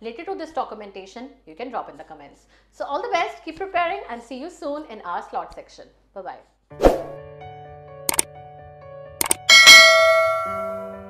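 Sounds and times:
mouse-click sound effects: 0:08.1 - 0:08.3, 0:09.2 - 0:09.5
notification bell chime: 0:09.2 - 0:11.0.

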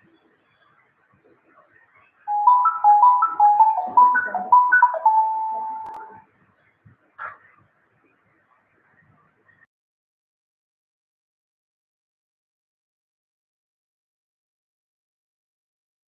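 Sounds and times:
electronic beeping melody: 0:02.3 - 0:06.2.

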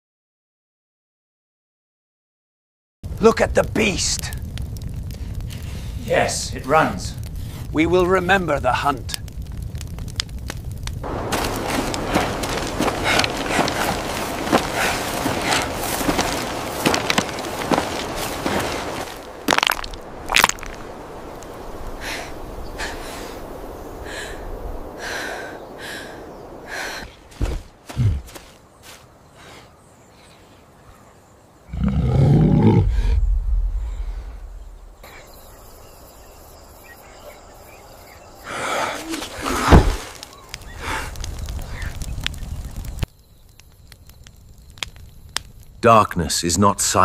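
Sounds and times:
rocks crunching under foot: 0:09.3 - 0:23.6, 0:27.0 - 0:29.2, 0:38.9 - 0:43.1
deep animal roar: 0:31.7 - 0:34.2.

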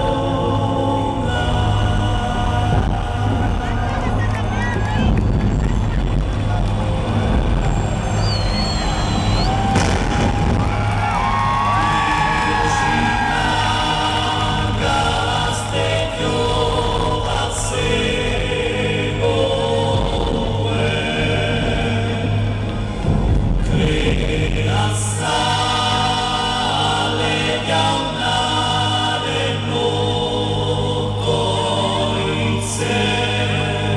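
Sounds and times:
choir chanting: 0:00.0 - 0:05.1, 0:06.4 - 0:33.9
low drone: 0:00.0 - 0:33.9
high whistle: 0:07.7 - 0:10.0.

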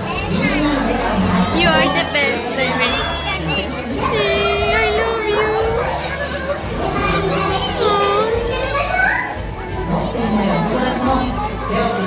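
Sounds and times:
sing-song performer's voice: 0:00.0 - 0:06.2
children chattering: 0:00.0 - 0:12.0.

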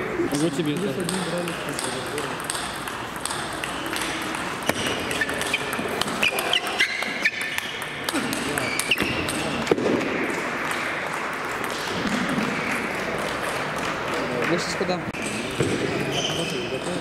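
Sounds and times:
table tennis ball hits: 0:00.3 - 0:17.0
shoes squeaking on court: 0:02.7 - 0:09.8, 0:15.2 - 0:17.0.

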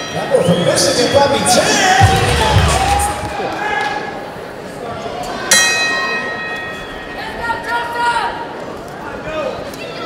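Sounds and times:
boxing ring bell ringing: 0:05.5 - 0:07.4.

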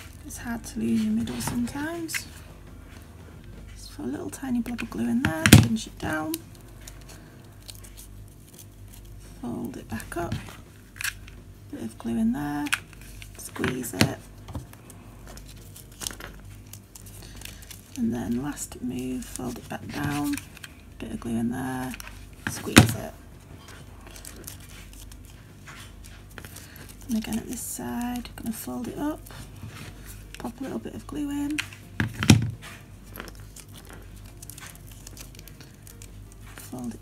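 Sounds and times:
fabric crinkling and rustling: 0:00.0 - 0:37.0.

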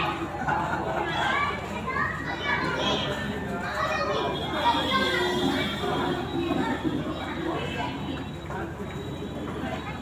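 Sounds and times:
children's voices: 0:00.0 - 0:08.8
people chattering: 0:00.0 - 0:10.0.

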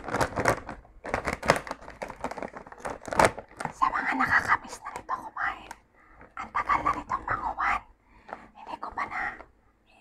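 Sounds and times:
woman whispering: 0:03.8 - 0:05.8, 0:06.4 - 0:07.9, 0:08.5 - 0:10.0.

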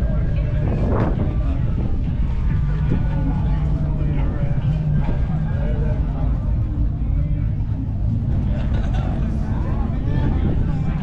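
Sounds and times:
people talking: 0:00.0 - 0:11.0
steady low rumble: 0:00.0 - 0:11.0.

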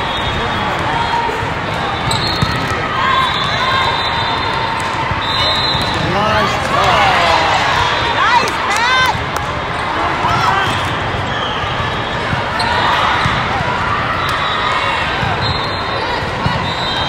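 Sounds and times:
many overlapping voices: 0:00.0 - 0:17.0
sneaker squeaks on court: 0:02.0 - 0:02.7.

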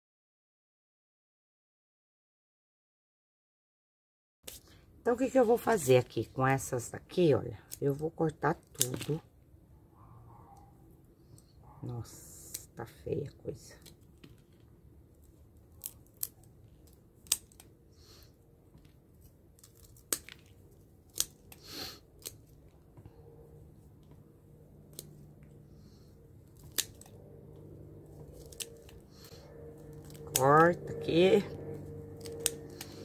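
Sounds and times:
scissors snipping stems: 0:07.6 - 0:09.2, 0:12.0 - 0:12.9, 0:15.8 - 0:17.8, 0:19.2 - 0:22.7, 0:24.8 - 0:25.6, 0:26.4 - 0:33.0.

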